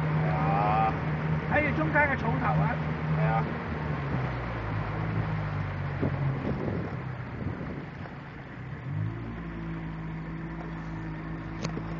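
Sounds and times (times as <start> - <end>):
boat engine running: 0.0 - 11.9
water noise: 0.0 - 11.9
wind: 0.0 - 11.9.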